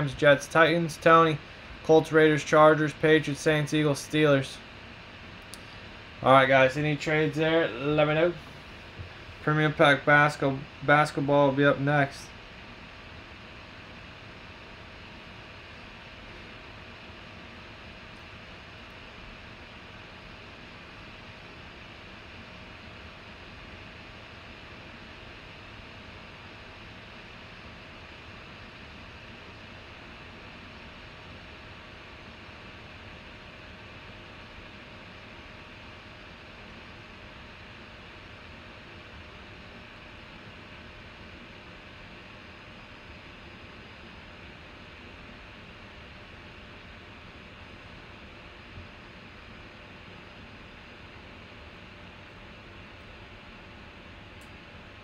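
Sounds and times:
steady background hiss: 0.0 - 36.8
faint constant hum: 0.0 - 55.0.

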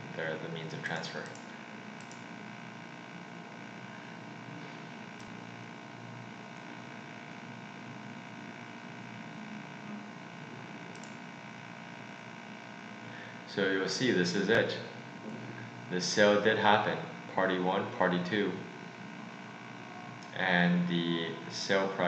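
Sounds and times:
constant hum: 0.0 - 22.0
faint click: 10.9 - 11.2.

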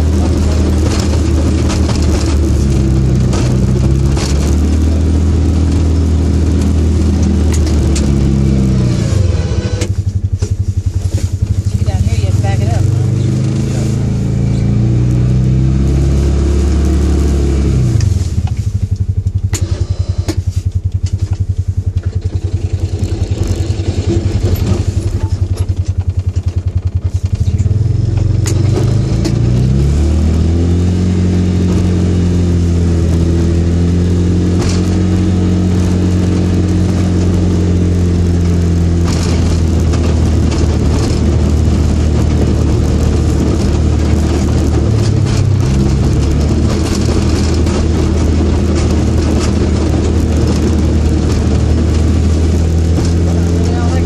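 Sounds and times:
single-cylinder engine plowing snow: 0.0 - 54.0.

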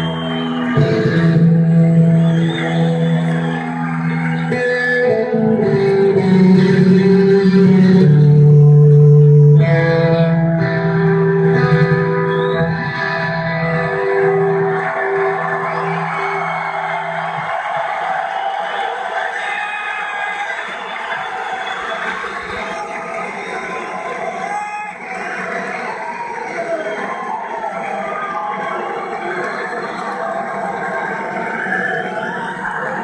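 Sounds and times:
effects-laden electric guitar notes: 0.0 - 17.5
arena crowd cheering and shouting: 0.0 - 33.0.

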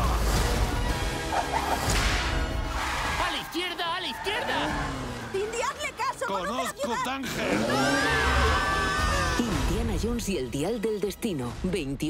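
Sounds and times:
trailer music: 0.0 - 12.0
whip crack: 1.7 - 2.5.

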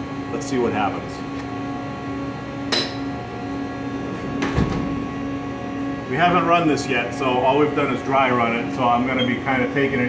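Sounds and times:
machine hum with held tones: 0.0 - 10.0
sliding machine doors thudding shut: 4.4 - 5.0.

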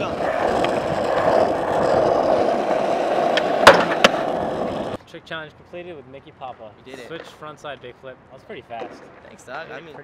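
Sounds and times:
skateboard clack: 0.0 - 5.0
skateboard wheels on asphalt: 0.0 - 5.0.

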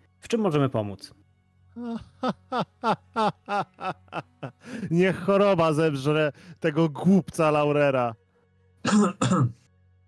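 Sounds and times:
man clearing throat: 8.8 - 9.6.

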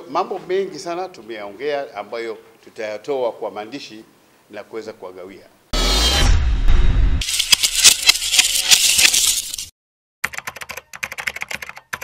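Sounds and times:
keyboard typing clicks: 10.2 - 12.0.

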